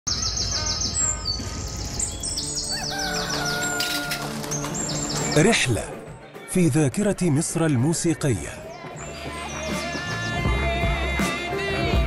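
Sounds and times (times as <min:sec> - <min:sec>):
small birds chirping: 0:00.1 - 0:05.6, 0:08.6 - 0:10.7.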